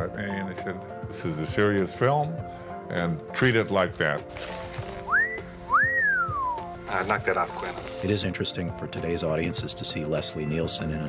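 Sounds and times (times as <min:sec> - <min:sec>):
man wolf whistling: 0:05.1 - 0:06.8.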